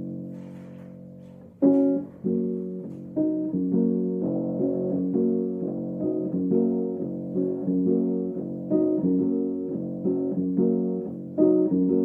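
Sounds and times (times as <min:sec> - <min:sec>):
upright piano chords: 0:00.0 - 0:12.0.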